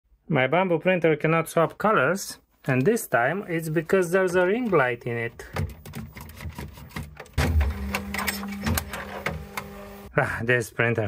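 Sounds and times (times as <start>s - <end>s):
clicks and knocks of handling: 4.4s - 9.7s
printer motor hum: 7.3s - 10.1s.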